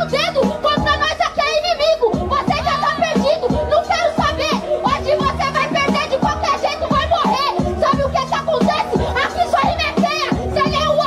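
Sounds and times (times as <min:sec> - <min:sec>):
hip-hop beat with bass line: 0:00.0 - 0:11.0
person rapping into a microphone: 0:00.0 - 0:11.0
steady kick drum: 0:02.1 - 0:11.0.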